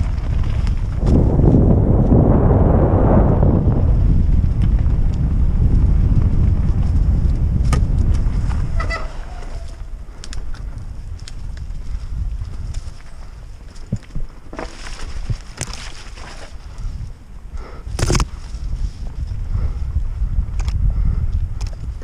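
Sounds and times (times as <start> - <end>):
bike rattling and clicking: 0.0 - 2.2, 3.4 - 22.0
tyres rolling over dirt: 0.0 - 2.2, 12.8 - 17.0
wind buffeting microphone: 0.0 - 22.0.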